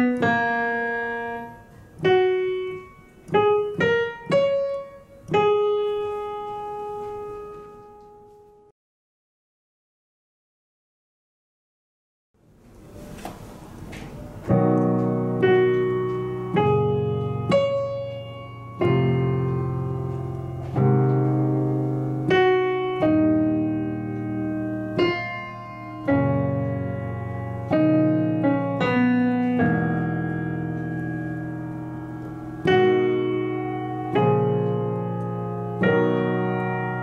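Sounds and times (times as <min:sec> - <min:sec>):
slow piano melody with chords: 0:00.0 - 0:08.7, 0:12.8 - 0:37.0.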